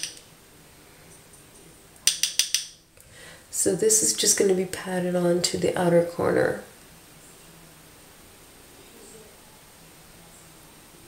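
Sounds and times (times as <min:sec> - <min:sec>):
sharp clicks of small objects: 0:00.0 - 0:00.2, 0:02.0 - 0:02.8.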